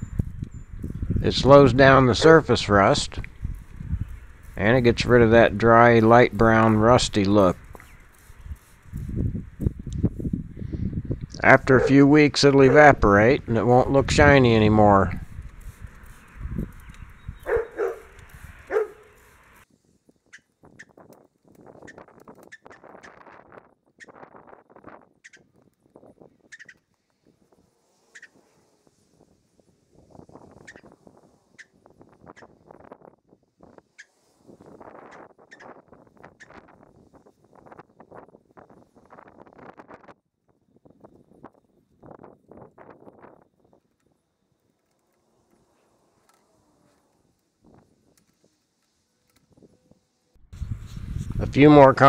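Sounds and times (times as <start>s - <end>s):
aerosol can spraying: 7.6s - 9.2s, 15.3s - 16.4s.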